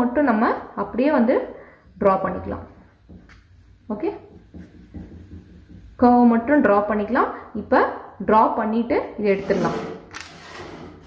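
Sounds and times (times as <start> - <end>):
marker tapping on paper: 3.0 - 3.5, 4.3 - 6.0.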